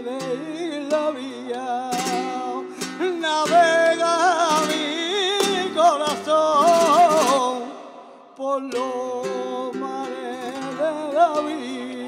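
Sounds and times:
guitar strums: 0.0 - 12.0
man singing ornamented line: 0.0 - 12.0.

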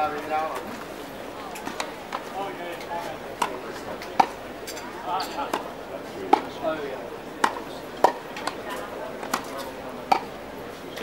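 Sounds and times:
murmur of voices: 0.0 - 11.0
tennis ball struck by rackets: 3.4 - 4.4, 5.5 - 5.7, 6.3 - 6.6, 7.4 - 8.6, 9.2 - 10.3.

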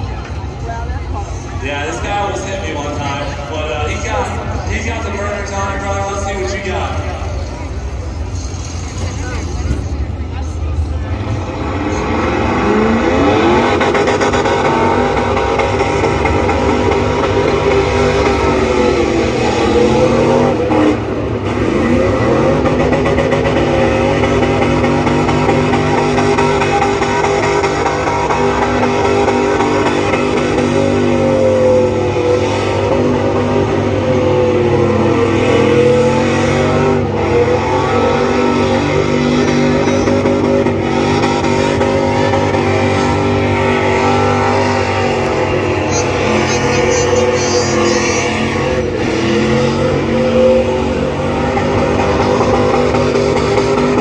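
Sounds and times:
car engine revving hard: 10.8 - 54.0.

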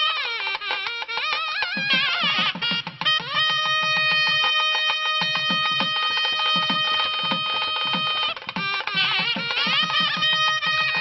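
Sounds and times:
wind instrument long note: 0.0 - 11.0.

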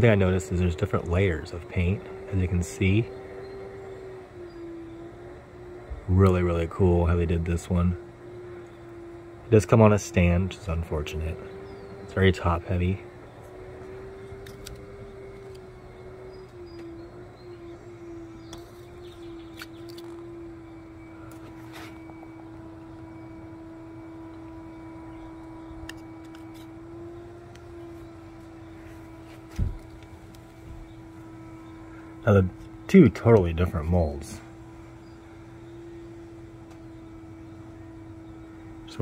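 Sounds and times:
mechanical drone: 0.0 - 39.0.

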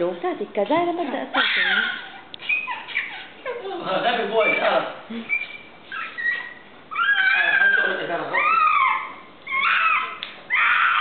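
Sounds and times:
baby squealing: 1.4 - 11.0.

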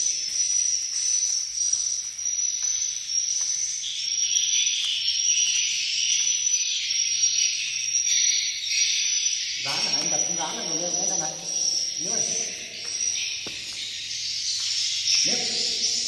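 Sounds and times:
swiftlets twittering chorus: 8.0 - 16.0.

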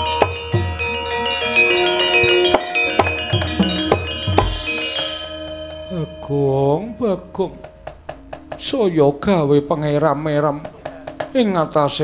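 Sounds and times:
sharp percussion strikes: 0.0 - 9.8, 10.4 - 11.8
metallophones and gongs ringing: 0.0 - 12.0.

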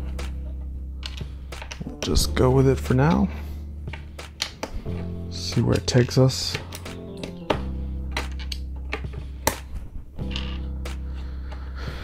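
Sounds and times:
background music with low chords: 0.0 - 12.0.

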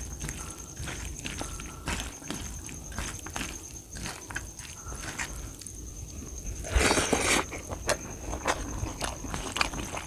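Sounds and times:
wet squishes of rice mixing: 0.0 - 5.8, 6.8 - 10.0.

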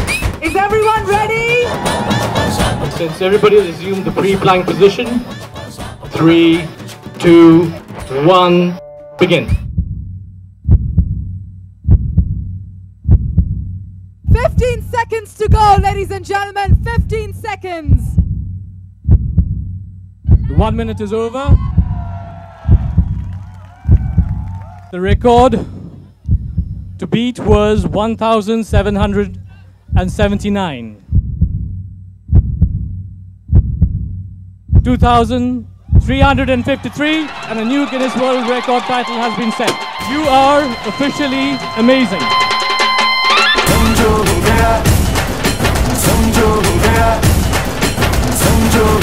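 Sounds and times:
slow heartbeat thumps: 9.5 - 20.8, 21.5 - 28.1, 28.7 - 30.4, 31.0 - 35.3, 35.9 - 36.5.

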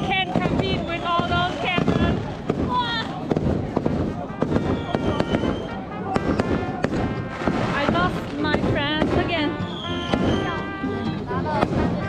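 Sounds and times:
firecrackers popping: 0.0 - 10.8, 11.5 - 12.0
crowd voices: 0.0 - 12.0.

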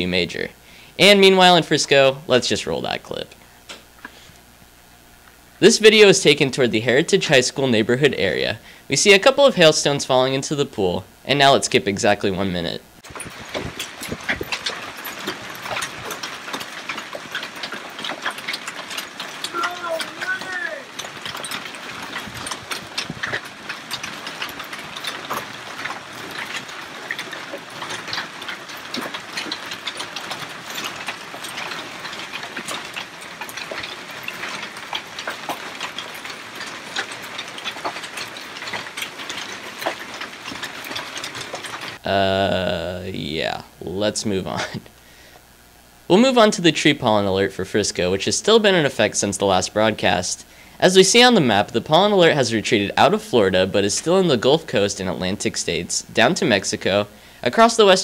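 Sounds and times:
hailstones clattering on ground: 13.0 - 42.6
hail splashing into pool: 13.0 - 43.6.

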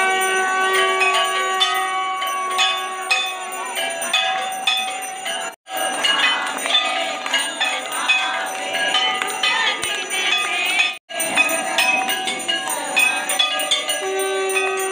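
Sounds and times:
temple bells ringing: 0.0 - 14.9.

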